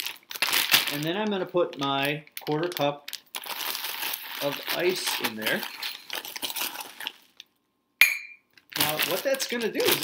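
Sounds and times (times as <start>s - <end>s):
plastic zip bag rustling: 0.0s - 7.4s, 8.7s - 10.0s
sharp ringing clink: 8.0s - 8.5s.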